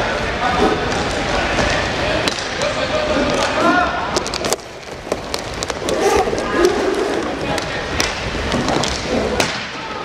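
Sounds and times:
sticks and puck clacking: 0.2s - 10.0s.

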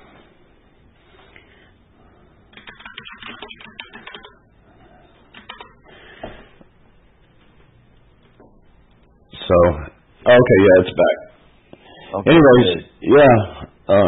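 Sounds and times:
keyboard typing clicks: 2.5s - 4.4s, 5.3s - 5.8s.

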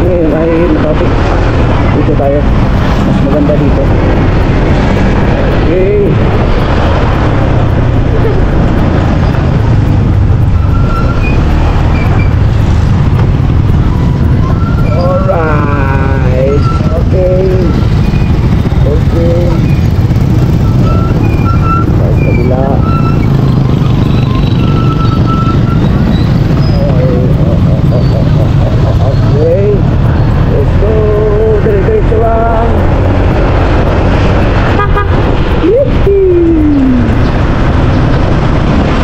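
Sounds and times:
voices: 0.0s - 4.2s, 5.5s - 6.9s, 14.8s - 19.9s, 21.8s - 25.0s, 26.4s - 33.4s, 35.5s - 37.4s
motorcycle engine: 0.0s - 39.0s
wind on microphone: 0.0s - 39.0s.

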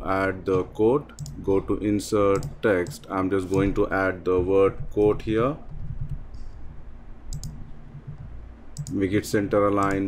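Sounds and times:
low steady hum: 0.0s - 10.0s
computer mouse clicks: 1.1s - 1.4s, 2.3s - 3.7s, 7.3s - 9.0s.

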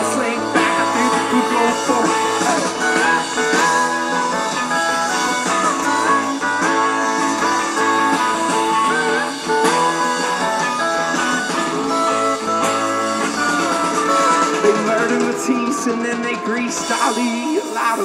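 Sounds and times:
drums: 0.0s - 18.0s
electric guitars: 0.0s - 18.0s
live rock band playing: 0.0s - 18.0s
pedal steel guitar sliding notes: 0.0s - 18.0s.

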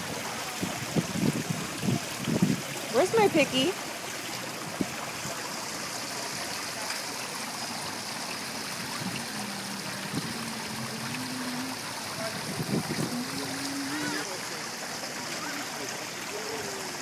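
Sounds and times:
fountain water flowing into basin: 0.0s - 17.0s.

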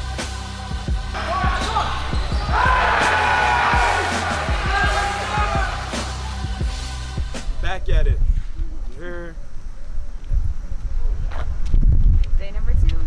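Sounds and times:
background music with bass: 0.0s - 10.7s
voices: 1.2s - 6.4s.

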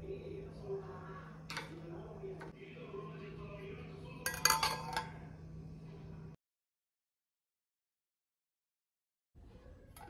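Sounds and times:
steel plate clattering on glass bowl: 4.3s - 5.1s.

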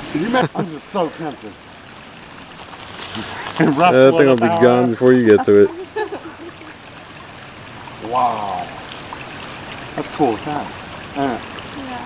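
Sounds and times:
flowing water rushing: 0.0s - 12.0s.

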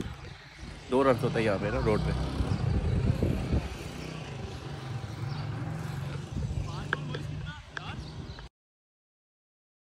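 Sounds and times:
distant voices: 0.0s - 8.5s.

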